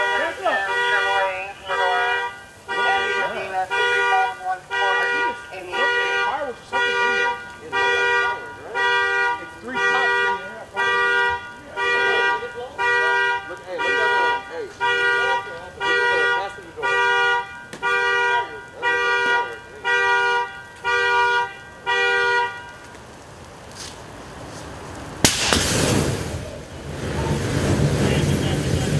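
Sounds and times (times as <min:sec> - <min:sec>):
car alarm horn honks: 0:00.0 - 0:22.9.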